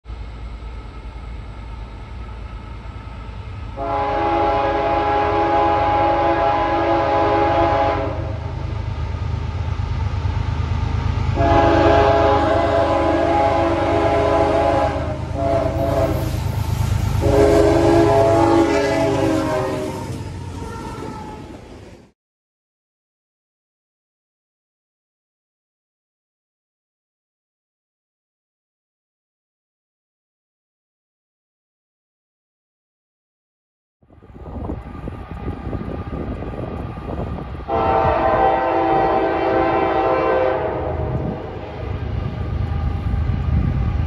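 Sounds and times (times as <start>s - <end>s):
locomotive air horn blasts: 3.8s - 8.7s, 11.4s - 21.4s, 37.7s - 41.9s.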